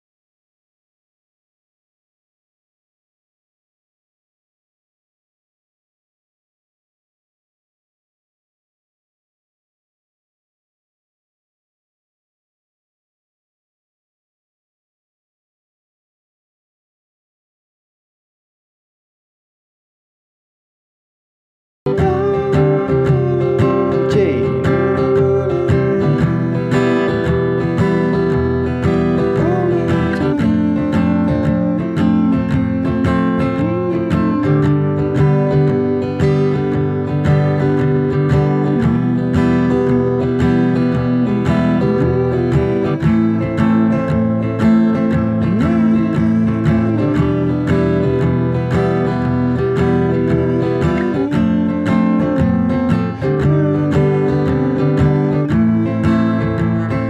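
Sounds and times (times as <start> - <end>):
acoustic guitar strumming: 21.9 - 57.0.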